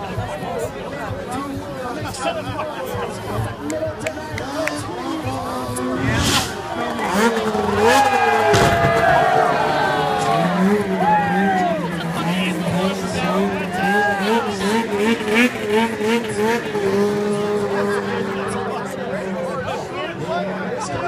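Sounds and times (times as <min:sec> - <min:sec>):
off-road engines revving: 0:00.0 - 0:21.0
steady low engine note: 0:04.6 - 0:13.8.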